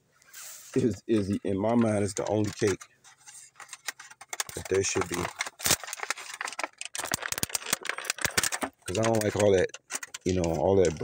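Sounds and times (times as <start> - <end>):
plastic package crinkling: 1.2 - 11.0.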